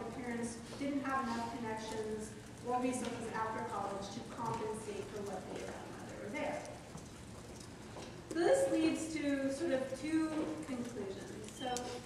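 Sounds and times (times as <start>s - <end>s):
woman lecturing over sound system: 0.0s - 6.8s, 8.4s - 12.0s.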